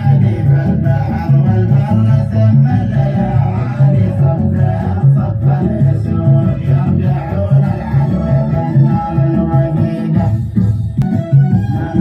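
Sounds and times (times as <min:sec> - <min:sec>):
folk dance music with heavy beat: 0:00.0 - 0:12.0.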